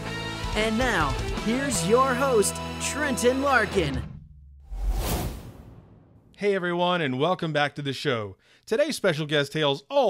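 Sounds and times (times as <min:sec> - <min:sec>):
whoosh sound effect: 0:04.6 - 0:06.3.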